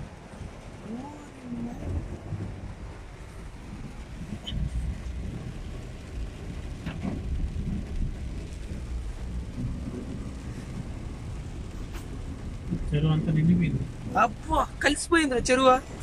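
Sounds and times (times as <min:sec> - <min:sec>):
car engine rumble: 0:00.0 - 0:16.0
tyres on wet road: 0:00.0 - 0:16.0.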